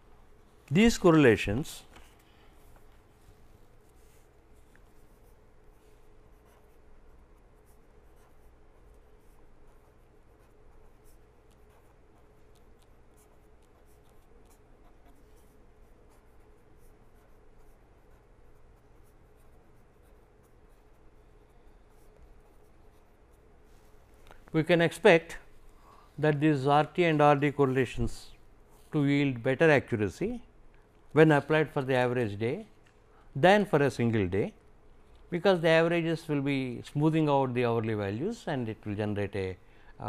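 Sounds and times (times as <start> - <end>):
faint steady hum: 0.0 - 40.0
pen scratching on paper: 3.8 - 23.9.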